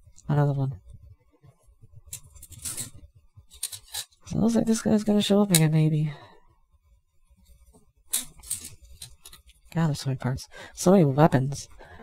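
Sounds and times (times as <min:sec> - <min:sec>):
plastic parts rustling: 0:02.0 - 0:04.3, 0:08.1 - 0:09.7.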